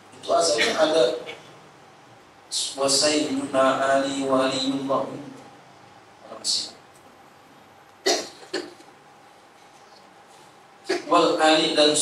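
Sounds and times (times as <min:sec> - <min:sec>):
man coughing into microphone: 0:00.4 - 0:01.6, 0:08.0 - 0:08.8.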